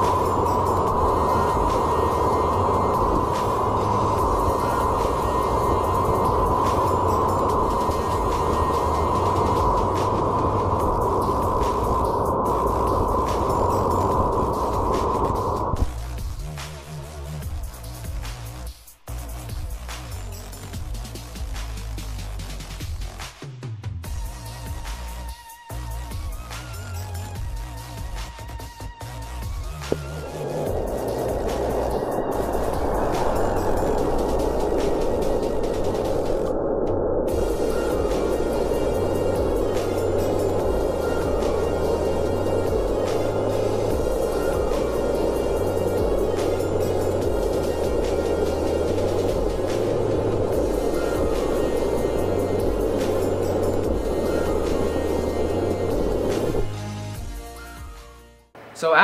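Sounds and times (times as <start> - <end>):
rocket motor burning: 0.0 - 22.2, 29.3 - 56.8
electronic music with bass line: 0.0 - 23.2, 37.3 - 57.6.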